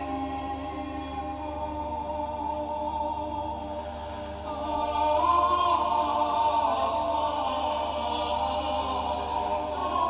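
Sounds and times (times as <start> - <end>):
choir singing held chords: 0.0 - 10.0.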